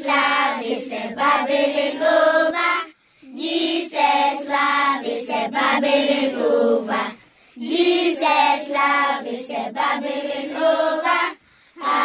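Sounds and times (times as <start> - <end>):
children singing: 0.0 - 12.0.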